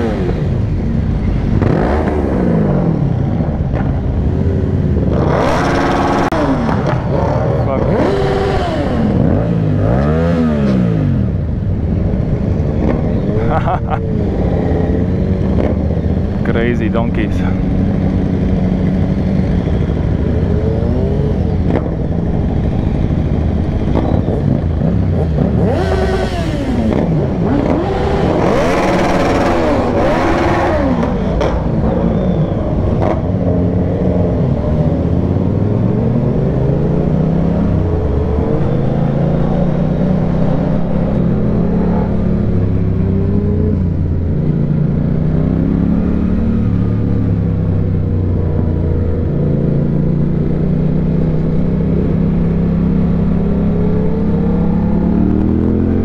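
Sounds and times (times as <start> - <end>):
motorcycle engine: 0.0 - 56.0
motorcycles revving: 0.0 - 56.0.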